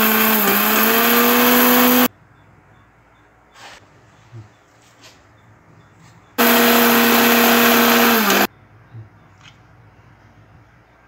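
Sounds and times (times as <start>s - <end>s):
electric mixer grinder grinding spices: 0.0s - 2.1s, 6.4s - 8.5s.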